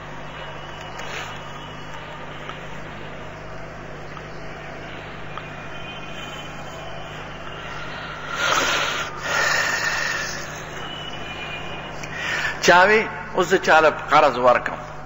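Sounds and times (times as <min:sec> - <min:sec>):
low even hum: 0:00.0 - 0:15.0.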